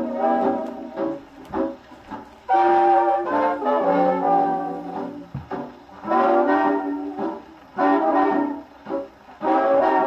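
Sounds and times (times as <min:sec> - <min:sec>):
swing band record on phonograph: 0:00.0 - 0:10.0.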